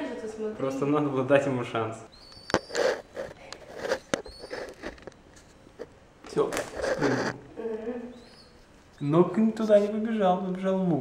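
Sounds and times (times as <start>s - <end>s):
person speaking: 6.3s - 8.2s.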